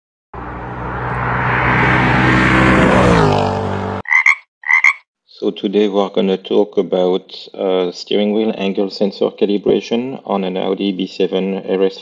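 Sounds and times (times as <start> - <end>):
car passing at speed: 0.4 - 4.0.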